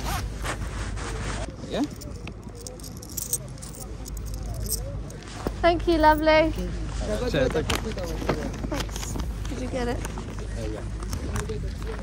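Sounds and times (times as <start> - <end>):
fabric rustling against microphone: 0.0 - 10.4
people talking in background: 0.0 - 12.0.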